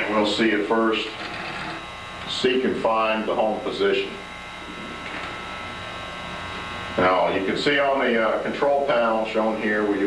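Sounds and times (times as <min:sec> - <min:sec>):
electrical buzz and hum: 0:00.0 - 0:10.0
faint high whining tones: 0:00.0 - 0:10.0.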